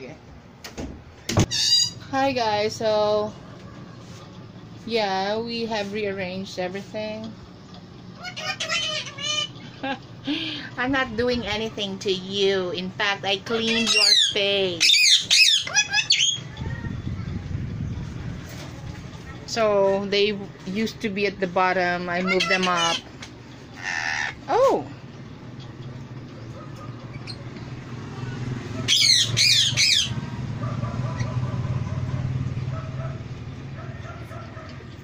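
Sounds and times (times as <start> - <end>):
parakeet squawking: 1.5 - 2.2, 8.1 - 9.8, 13.5 - 16.9, 21.8 - 24.7, 26.4 - 27.5, 28.7 - 33.2.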